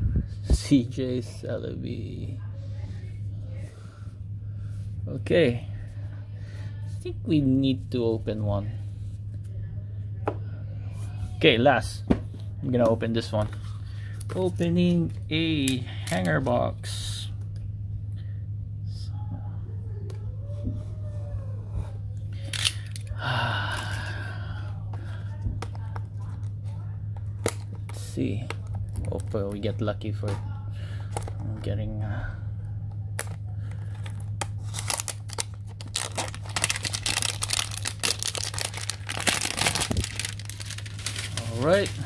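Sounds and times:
steady low hum: 0:00.0 - 0:42.0
plastic wrapper crinkling: 0:33.2 - 0:42.0
box tearing open: 0:34.7 - 0:41.4
cardboard ripping: 0:34.7 - 0:42.0.

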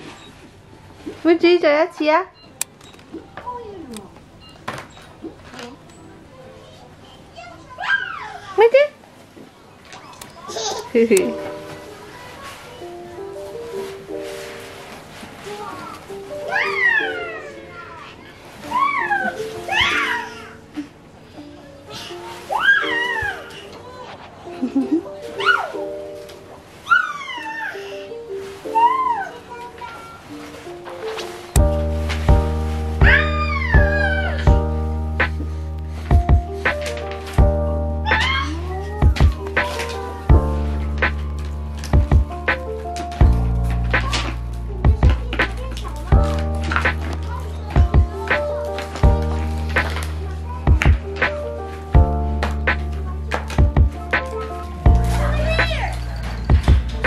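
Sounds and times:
child squealing: 0:07.8 - 0:08.5, 0:16.5 - 0:18.0, 0:18.6 - 0:20.7, 0:22.5 - 0:23.6, 0:25.4 - 0:25.9, 0:26.8 - 0:27.9, 0:28.7 - 0:29.4, 0:33.0 - 0:34.5, 0:38.0 - 0:38.8
background music with steady beat: 0:30.7 - 0:57.0.

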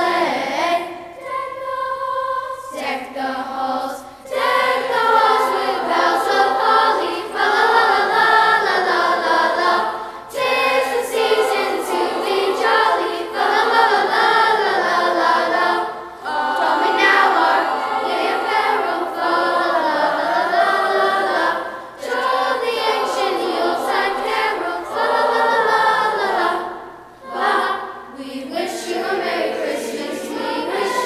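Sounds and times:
children's choir singing carols: 0:00.0 - 0:31.0.

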